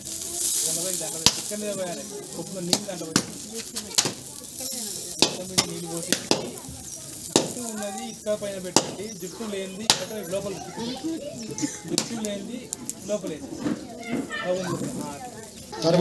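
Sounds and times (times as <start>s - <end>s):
sizzling hiss: 0.0s - 16.0s
wood fire crackling and popping: 0.0s - 16.0s.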